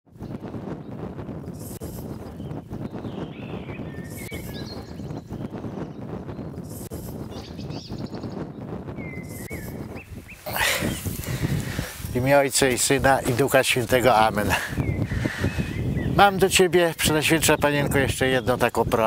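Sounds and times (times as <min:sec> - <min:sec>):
birds chirping: 0:00.1 - 0:19.0.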